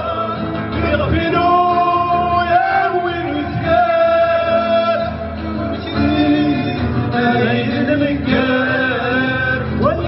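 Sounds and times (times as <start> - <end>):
acoustic guitars: 0.0 - 10.0
men singing chant-like folk song: 0.0 - 10.0.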